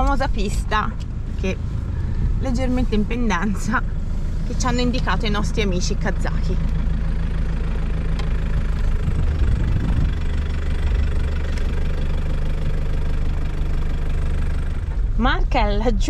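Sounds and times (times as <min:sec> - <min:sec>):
car engine driving slowly: 0:00.0 - 0:16.0.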